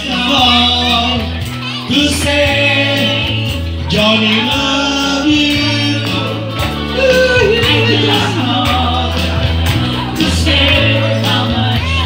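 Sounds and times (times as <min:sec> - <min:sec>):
electronic keyboard accompaniment: 0:00.0 - 0:12.0
group singing into microphones: 0:00.0 - 0:12.0.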